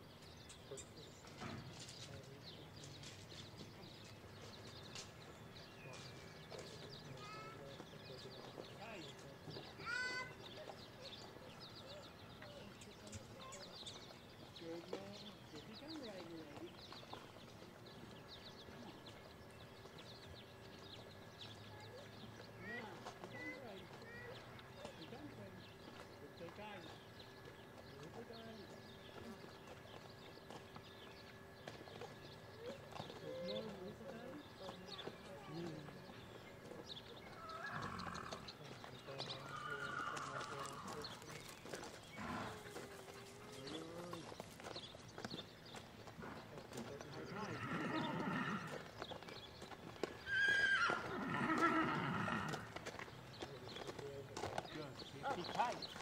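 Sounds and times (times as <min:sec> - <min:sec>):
hooves crunching on gravel: 0:00.2 - 0:56.0.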